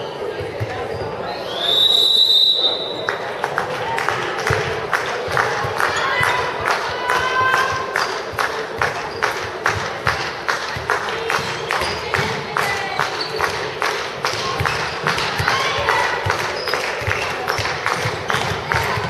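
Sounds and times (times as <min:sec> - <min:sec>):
voices and crowd noise: 0:00.0 - 0:19.0.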